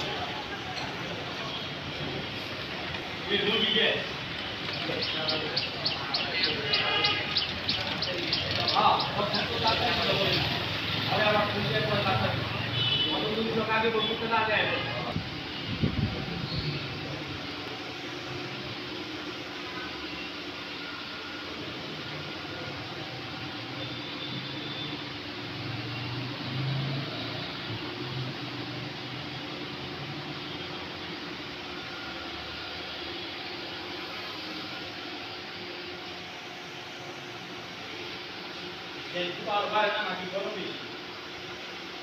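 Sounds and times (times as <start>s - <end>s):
steady hum and hiss: 0.0s - 42.0s.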